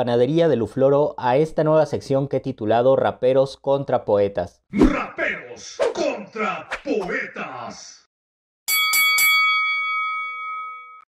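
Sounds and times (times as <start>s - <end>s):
bell-like chime: 8.7s - 11.0s.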